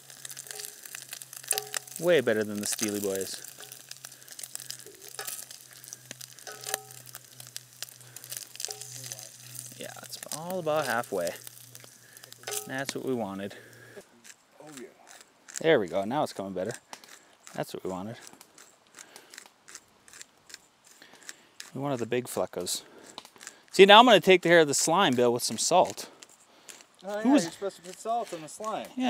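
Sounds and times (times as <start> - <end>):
small sharp pops: 0.0 - 13.0, 22.6 - 23.8
bacon sizzling in grease: 0.0 - 29.0
pepper grinder crunching: 0.0 - 29.0.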